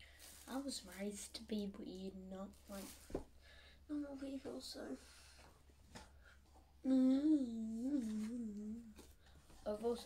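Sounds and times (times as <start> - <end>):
girl humming a wavering note: 6.8 - 9.0.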